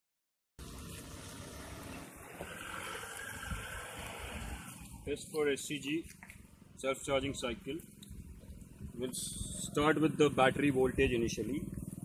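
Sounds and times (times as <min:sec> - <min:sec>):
outdoor background noise: 0:00.6 - 0:12.0
wind rumbling on microphone: 0:01.7 - 0:05.1, 0:08.0 - 0:09.9.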